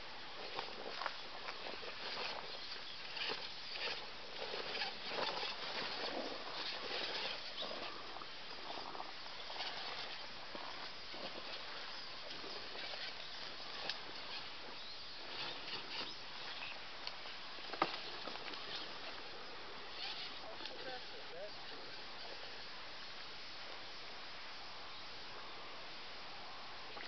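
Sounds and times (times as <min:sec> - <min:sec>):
rustling through long grass and twigs: 0:00.0 - 0:27.0
small ticks: 0:00.4 - 0:14.5.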